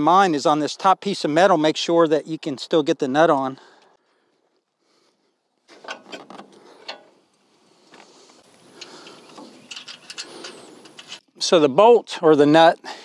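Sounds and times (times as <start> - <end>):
metal bolts clicking and rattling: 5.7 - 7.2, 8.7 - 11.4.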